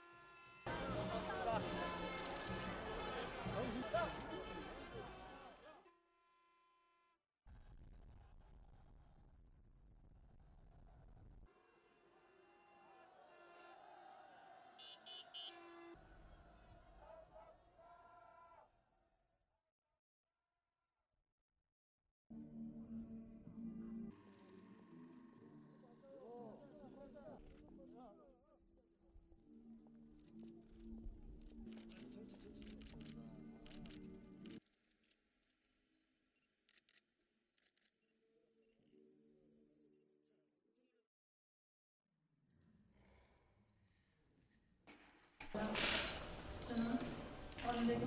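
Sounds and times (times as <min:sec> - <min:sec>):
faint horn toots: 0:14.8 - 0:16.0.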